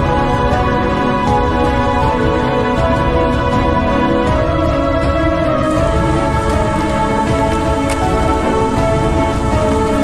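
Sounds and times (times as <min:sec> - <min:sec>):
sustained music notes: 0:00.0 - 0:10.0.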